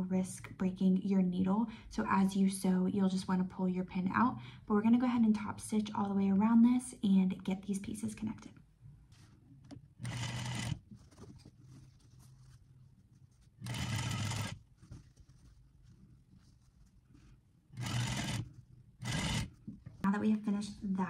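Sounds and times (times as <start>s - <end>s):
sewing machine stitching: 9.7s - 11.3s, 13.6s - 15.2s, 17.7s - 20.1s.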